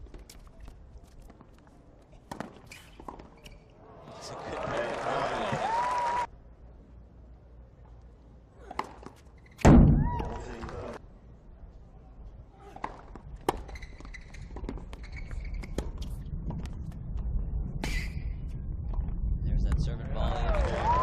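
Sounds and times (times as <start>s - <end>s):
shoe squeaks on court: 2.3s - 3.8s, 9.3s - 9.7s, 13.4s - 16.2s.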